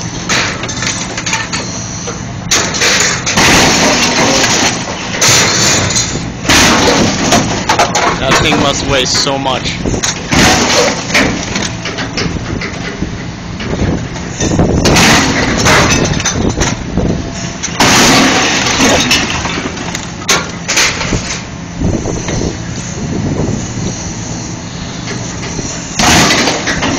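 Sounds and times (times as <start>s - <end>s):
diesel excavator engine running: 0.0s - 26.9s
crunching grinding sheet metal: 2.5s - 16.9s, 17.6s - 21.5s, 25.0s - 26.9s.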